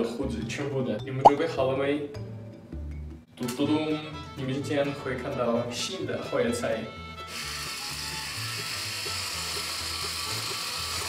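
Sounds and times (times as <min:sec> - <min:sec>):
background music: 0:00.0 - 0:08.6
electric shaver buzzing: 0:07.3 - 0:11.0.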